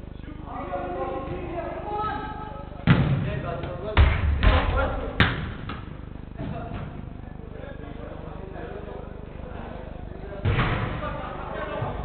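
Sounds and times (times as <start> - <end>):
football kicked with echoing thuds: 2.8 - 3.4, 4.0 - 6.6, 10.4 - 11.0.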